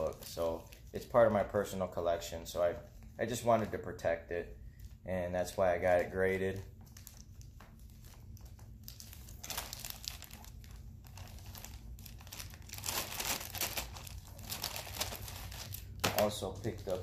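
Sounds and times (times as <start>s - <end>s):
plastic sleeve crinkling: 0.0s - 4.0s, 4.7s - 17.0s.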